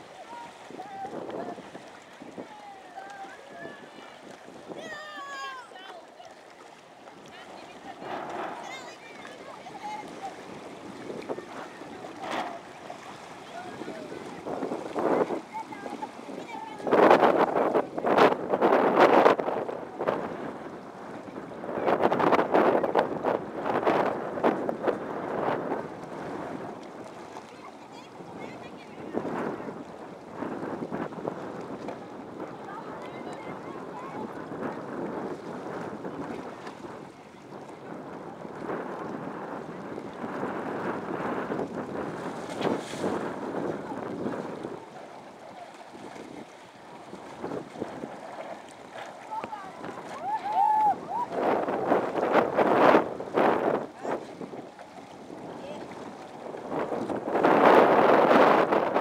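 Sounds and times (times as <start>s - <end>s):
wind buffeting microphone: 0.0s - 6.0s, 6.6s - 59.0s
small waves lapping: 0.0s - 59.0s.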